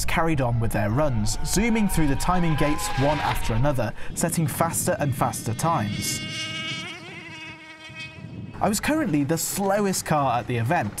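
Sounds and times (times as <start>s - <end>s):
rc car motor whine passing: 1.4s - 3.8s, 5.6s - 8.5s.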